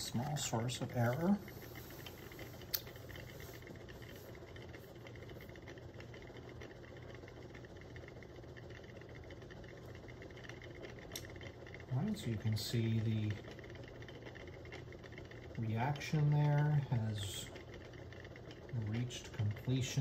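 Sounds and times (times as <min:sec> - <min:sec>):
magnetic stirrer hum: 0:00.0 - 0:20.0.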